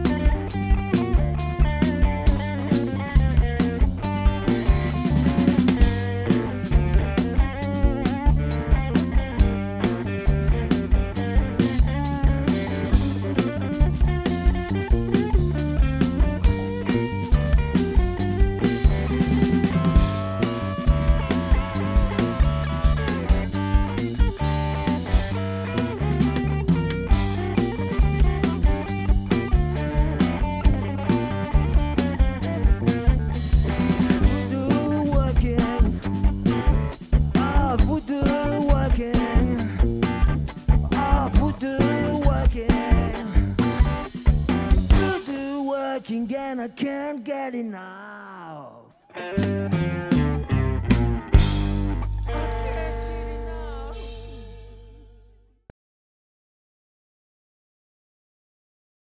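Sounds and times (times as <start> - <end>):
electric bass: 0.0 - 45.5, 49.2 - 55.7
drum kit: 0.0 - 46.1, 49.4 - 55.4
electric guitar: 0.0 - 46.8, 48.8 - 55.4.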